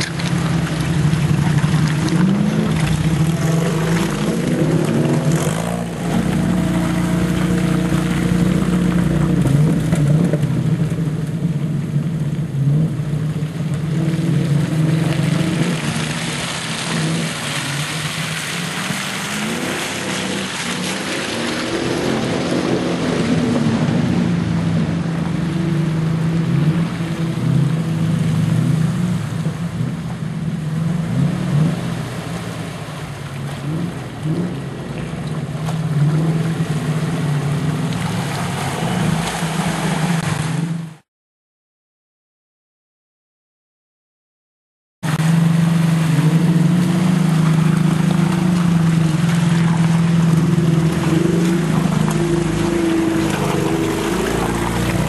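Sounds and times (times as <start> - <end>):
off-road engines revving: 0.0 - 41.0, 45.1 - 55.0.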